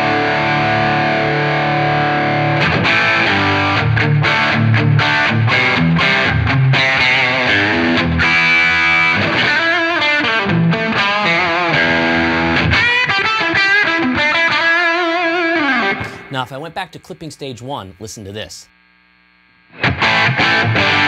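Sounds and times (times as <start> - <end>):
distorted electric guitar: 0.0 - 21.0.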